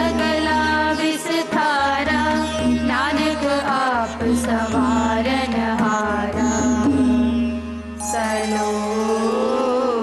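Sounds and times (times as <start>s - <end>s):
string instrument drone: 0.0s - 10.0s
young voices singing: 8.1s - 10.0s.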